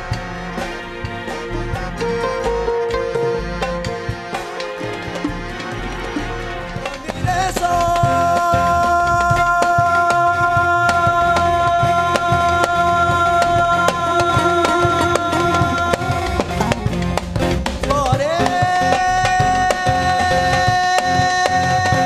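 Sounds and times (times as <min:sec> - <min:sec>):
electric bass: 0:00.0 - 0:21.7
drum kit beat: 0:00.0 - 0:22.0
keyboard: 0:00.0 - 0:22.0
man singing held high note: 0:06.9 - 0:17.1, 0:17.8 - 0:22.0.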